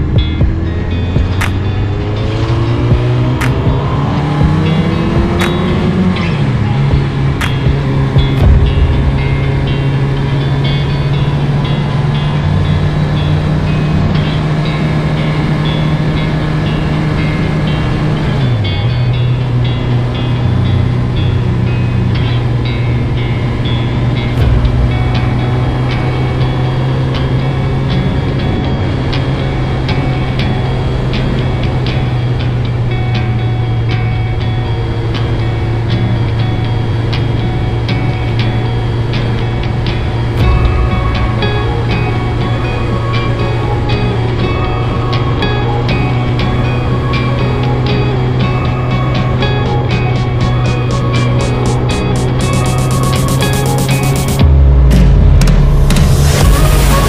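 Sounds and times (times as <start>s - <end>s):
motorcycle engine cruising: 0.0s - 57.0s
music playing: 0.0s - 57.0s.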